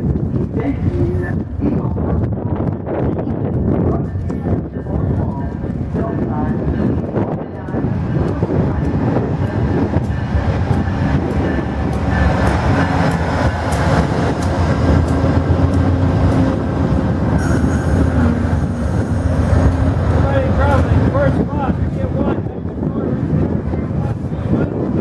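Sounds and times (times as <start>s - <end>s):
train wheels rumbling on rail: 0.0s - 25.0s.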